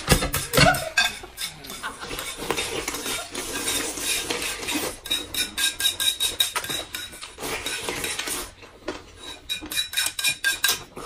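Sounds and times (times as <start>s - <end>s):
noodles slurped and chewed: 0.8s - 5.6s, 6.2s - 9.7s.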